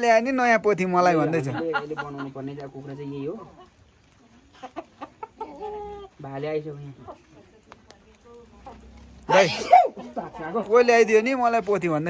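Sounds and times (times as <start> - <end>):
chickens clucking: 0.8 - 11.2.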